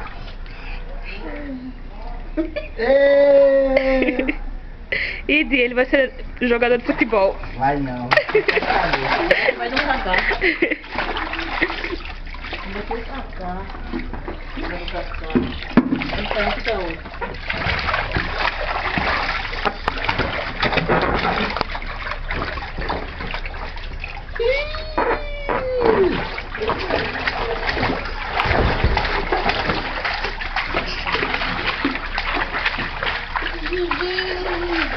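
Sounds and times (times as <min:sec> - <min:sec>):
water splashing in paddling pool: 0:06.5 - 0:34.9
voices: 0:24.4 - 0:28.0.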